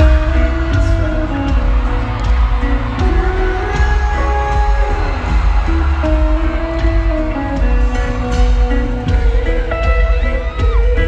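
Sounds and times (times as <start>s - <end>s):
heavy bass: 0.0s - 11.0s
sustained guitar notes: 0.0s - 11.0s.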